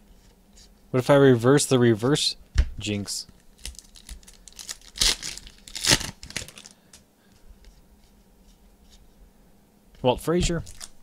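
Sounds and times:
wrapper crinkling: 0:03.5 - 0:06.8, 0:10.6 - 0:11.0
card pack wrapper ripping: 0:03.6 - 0:06.8, 0:10.6 - 0:11.0.

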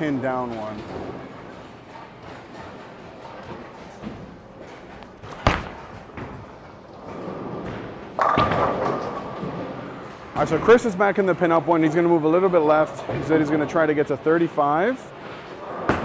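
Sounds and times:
bowling ball rolling: 0:00.4 - 0:10.6
bowling ball thud on lane: 0:05.2 - 0:06.3.

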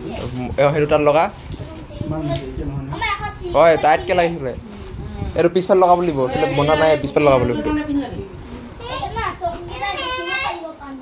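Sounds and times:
children and adults chattering: 0:00.0 - 0:11.0.

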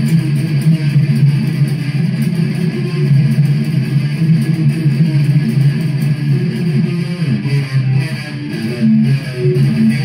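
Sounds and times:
electric guitar metal riff: 0:00.0 - 0:10.0.

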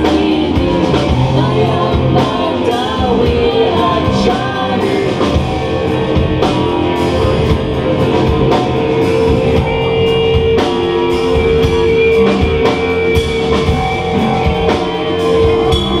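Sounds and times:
live rock band playing: 0:00.0 - 0:16.0
drum kit hits: 0:05.3 - 0:16.0.

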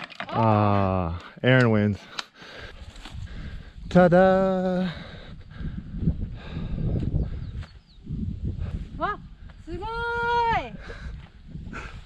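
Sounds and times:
wind buffeting microphone: 0:02.6 - 0:12.0.

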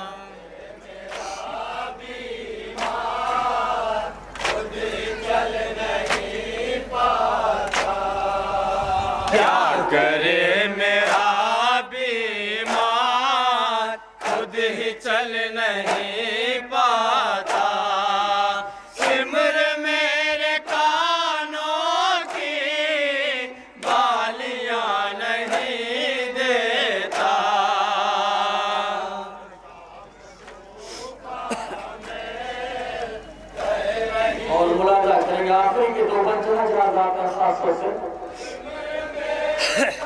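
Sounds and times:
men chanting a lament: 0:00.0 - 0:40.0.

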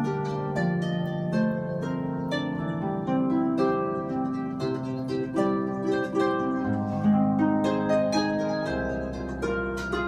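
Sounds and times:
harp plucked notes and chords: 0:00.0 - 0:10.0.

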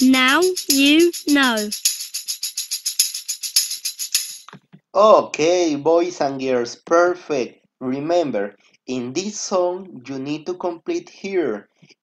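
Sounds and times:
tambourine jingle beat: 0:00.0 - 0:04.6.

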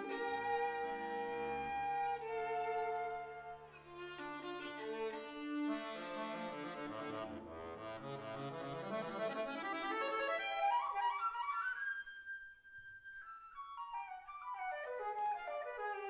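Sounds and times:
flute violin and accordion trio: 0:00.0 - 0:16.0.

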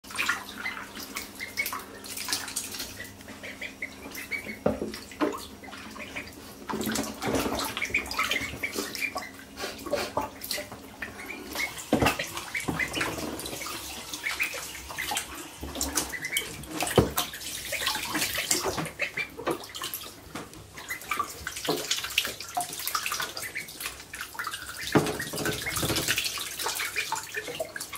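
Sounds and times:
ducklings splashing in water: 0:00.0 - 0:27.9.

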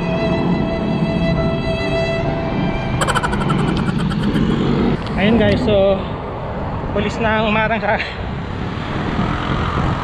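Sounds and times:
roadside traffic: 0:00.0 - 0:10.0
motorcycle engine approaching: 0:03.0 - 0:05.3.

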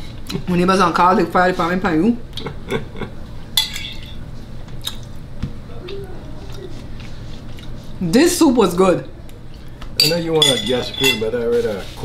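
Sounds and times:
spoon clinking on bowl: 0:03.6 - 0:04.2, 0:10.0 - 0:11.3.

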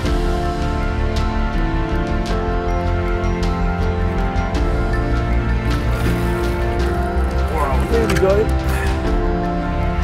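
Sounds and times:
background music with low pulse: 0:00.0 - 0:10.0
person's voice: 0:07.5 - 0:08.5.

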